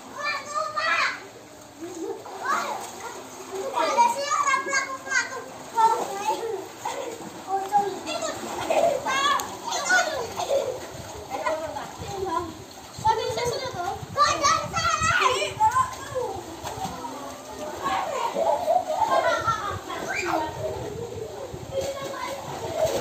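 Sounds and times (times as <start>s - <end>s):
children shouting: 0.0s - 7.3s, 8.0s - 10.9s, 14.2s - 20.7s
water splashing: 0.0s - 23.0s.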